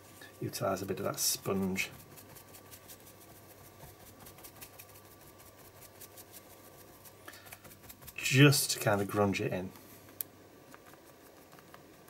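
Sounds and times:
sponge dabbing paint on paper: 0.0s - 9.4s
low steady hum: 0.0s - 12.0s.

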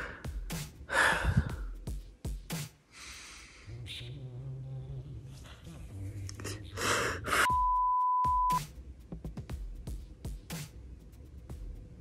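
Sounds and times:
steady electronic beep: 7.5s - 8.6s.

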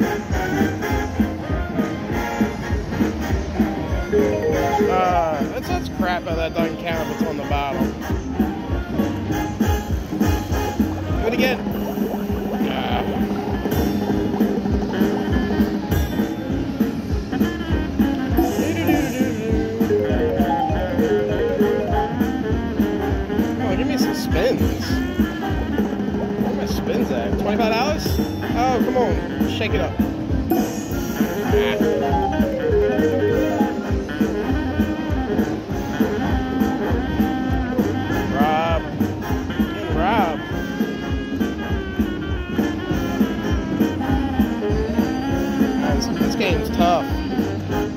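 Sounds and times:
plucked-string tune over a beat: 3.8s - 7.8s, 10.0s - 23.0s
slot machine looping music: 3.9s - 7.8s, 9.6s - 17.1s, 18.3s - 25.1s, 26.4s - 34.9s.

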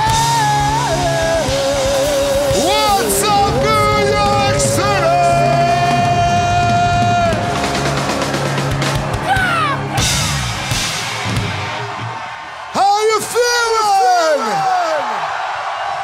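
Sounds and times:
rock band playing live: 0.0s - 12.4s
crowd cheering: 0.0s - 16.0s
whoops and yells: 9.2s - 10.1s, 12.1s - 16.0s.

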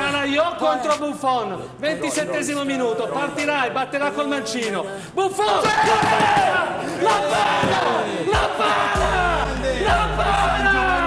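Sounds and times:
men shouting in celebration: 5.5s - 11.0s.

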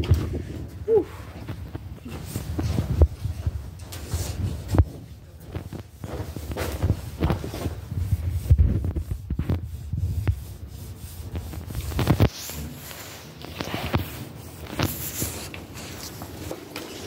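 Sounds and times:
microphone handling rumble: 0.0s - 10.7s.

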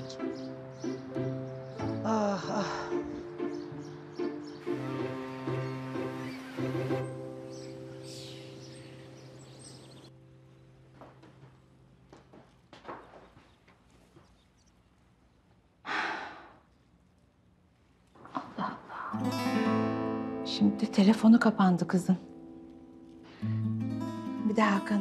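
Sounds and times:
held music chord: 0.0s - 11.2s, 19.2s - 25.0s
acoustic guitar music: 0.0s - 11.7s, 19.1s - 25.0s
breathy sigh: 15.9s - 16.6s.

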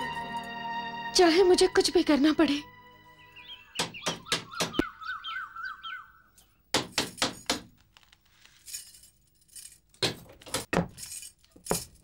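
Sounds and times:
birds chirping: 2.1s - 6.7s.

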